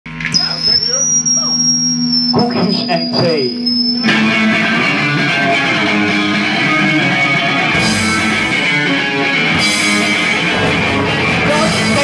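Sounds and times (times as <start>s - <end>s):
high steady whine: 0.1s - 12.0s.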